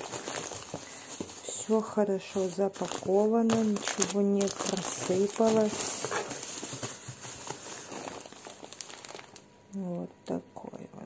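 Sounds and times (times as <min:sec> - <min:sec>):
plastic bags rustling: 0:00.0 - 0:09.5.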